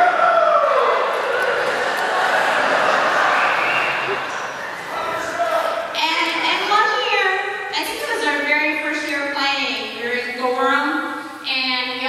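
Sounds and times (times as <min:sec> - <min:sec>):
falling whoop: 0:00.0 - 0:01.0
audience applauding: 0:00.0 - 0:05.9
audience cheering: 0:00.0 - 0:05.9.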